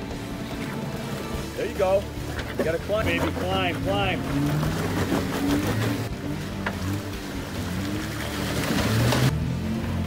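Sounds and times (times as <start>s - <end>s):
engine running under load: 0.0s - 10.0s
tyres churning through mud: 0.0s - 10.0s.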